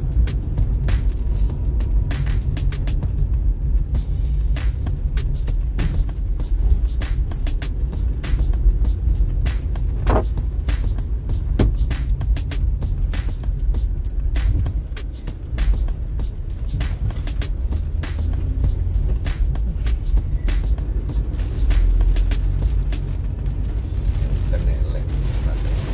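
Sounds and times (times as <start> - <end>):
low rumble of engine and road: 0.0 - 25.9
music: 0.0 - 25.9
raindrops tapping on windscreen: 0.0 - 25.9.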